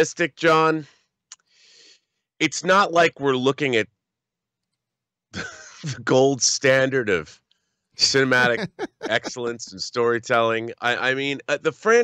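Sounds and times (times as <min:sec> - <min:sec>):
man speaking: 0:00.0 - 0:00.9, 0:02.4 - 0:03.8, 0:05.4 - 0:07.3, 0:08.0 - 0:12.0
man clearing throat: 0:05.4 - 0:06.1, 0:08.0 - 0:09.6.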